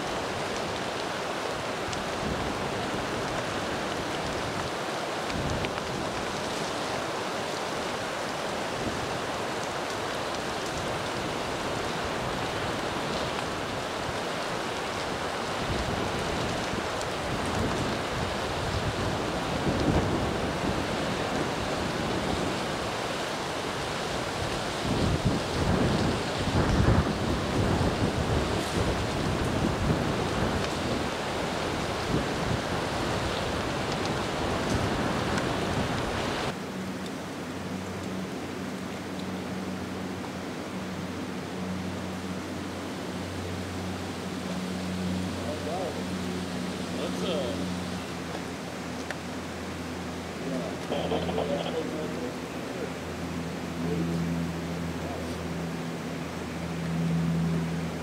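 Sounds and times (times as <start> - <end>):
wind gusts rumbling on microphone: 0.0 - 58.0
wind rushing through forest: 0.0 - 58.0.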